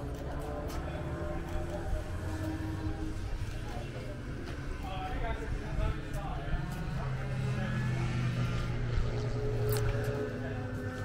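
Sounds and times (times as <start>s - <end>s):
kart engines droning: 0.0s - 11.0s.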